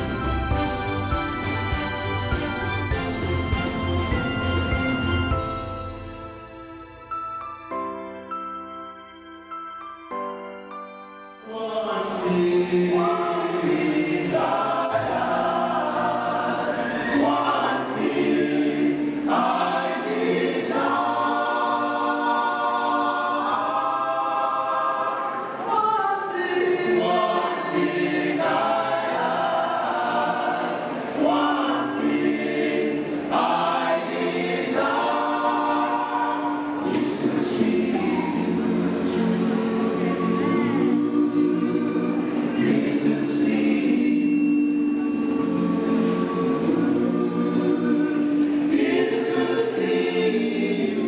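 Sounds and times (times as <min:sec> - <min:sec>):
men's choir singing gospel: 0:11.4 - 0:51.0.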